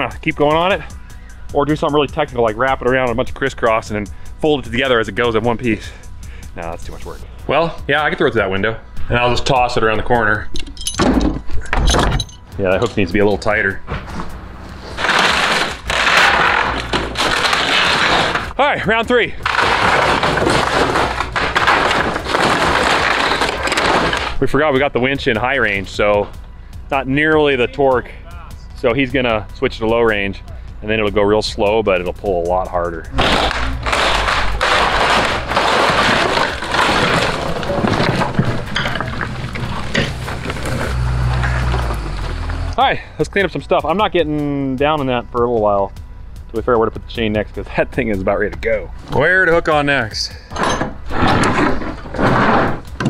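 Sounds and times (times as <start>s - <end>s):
wooden wall cracking and splintering: 15.0s - 18.6s, 19.4s - 24.4s, 33.2s - 42.4s, 50.8s - 53.0s
skid steer engine running: 33.1s - 42.8s.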